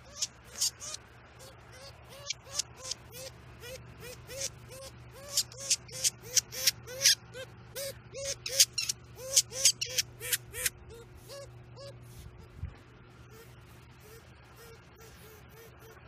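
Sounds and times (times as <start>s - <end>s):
weasel squeaky chirps: 0.0s - 12.6s, 13.3s - 16.0s.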